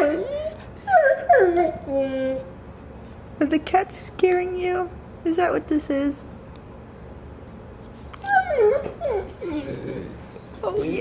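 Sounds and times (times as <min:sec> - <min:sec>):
dog whining: 0:00.0 - 0:02.6, 0:08.0 - 0:11.0.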